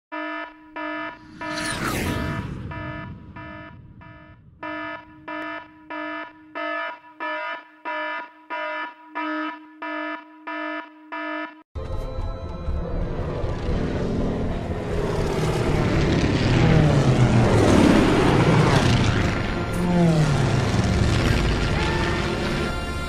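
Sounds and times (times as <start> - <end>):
alarm buzzing in short pulses: 0.1 - 11.6
falling whistle: 0.9 - 6.7
rush of noise: 1.2 - 5.2.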